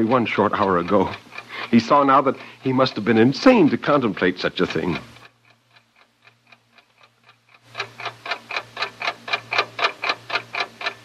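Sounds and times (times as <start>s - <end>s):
clock ticking fast: 0.0s - 11.0s.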